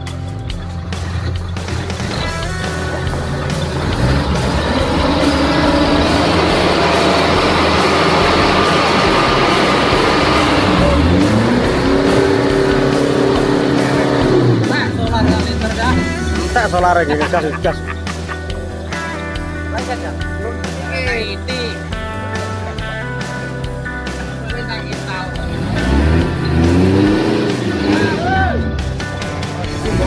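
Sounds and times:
diesel truck engine revving: 0.0 - 19.7, 21.7 - 30.0
background music: 0.0 - 30.0.

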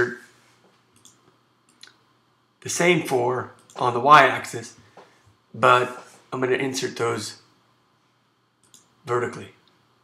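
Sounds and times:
computer clicks: 1.0 - 2.0, 8.6 - 9.0.

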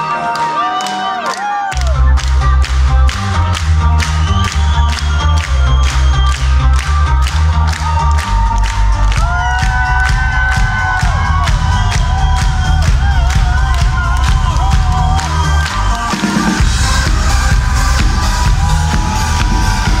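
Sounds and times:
crowd cheering: 0.0 - 20.0
live band music: 0.0 - 20.0.

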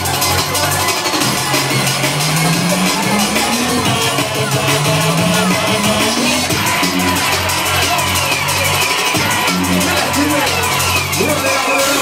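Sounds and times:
electronic dance music: 0.0 - 12.0
pulsing bass line: 0.0 - 12.0.

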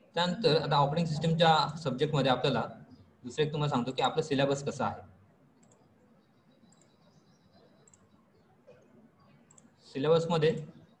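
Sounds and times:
faint computer mouse clicks: 5.6 - 6.0, 6.6 - 7.2, 7.8 - 9.8.

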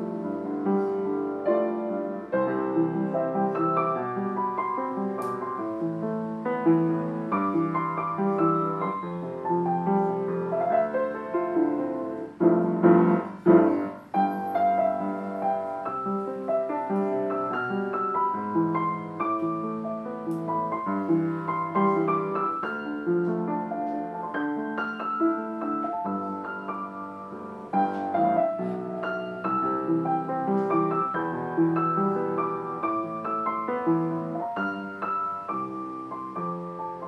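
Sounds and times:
loud piano chords: 0.0 - 37.0
piano playing a pop ballad: 0.0 - 37.0.

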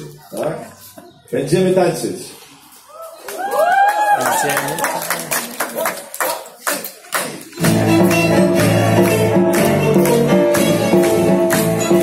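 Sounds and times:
live band with violins and guitar: 7.6 - 12.0.

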